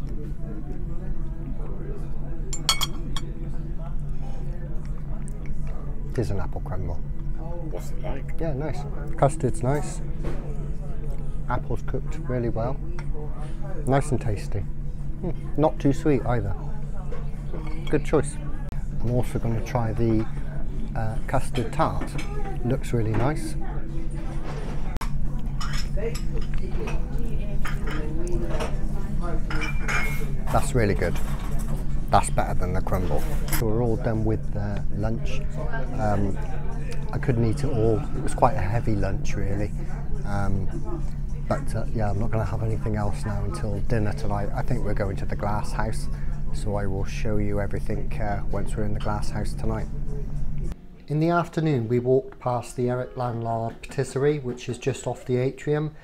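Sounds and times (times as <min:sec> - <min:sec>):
faint conversation: 0:00.0 - 0:51.1
background chatter: 0:00.0 - 0:56.0
low steady hum: 0:00.0 - 0:56.0
cutlery clinking on plates: 0:02.5 - 0:03.3, 0:29.5 - 0:31.9
spoon clinking against bowl: 0:02.5 - 0:03.3.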